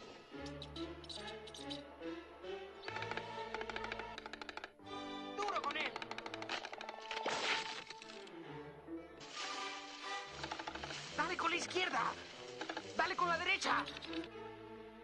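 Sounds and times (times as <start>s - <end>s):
orchestral music: 0.0s - 4.2s, 4.8s - 15.0s
cartoon woodpecker pecking wood: 0.4s - 1.8s, 2.8s - 4.8s, 5.4s - 8.0s, 10.4s - 11.1s, 12.5s - 14.3s.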